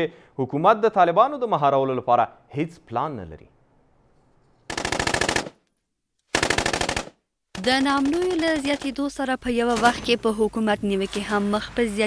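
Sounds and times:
automatic gunfire: 0:04.7 - 0:05.6, 0:06.3 - 0:08.8.

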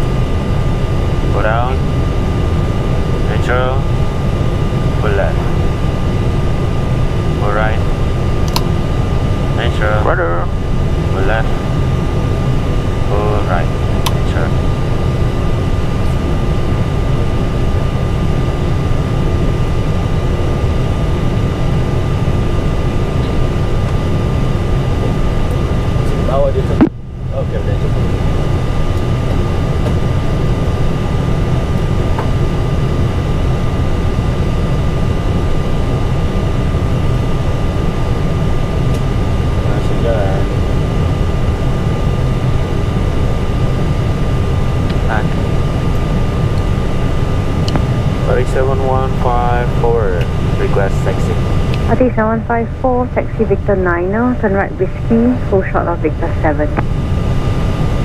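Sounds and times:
aircraft engines idling: 0:00.0 - 0:58.0
constant high tones: 0:00.0 - 0:58.0.

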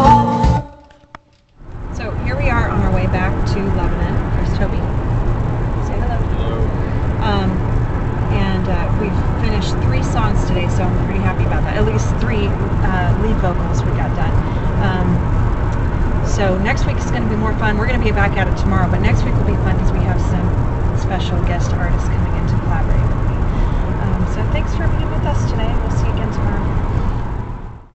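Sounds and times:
car road and engine rumble: 0:00.0 - 0:27.9
voices talking: 0:02.0 - 0:05.0, 0:05.8 - 0:15.4, 0:16.2 - 0:26.8.

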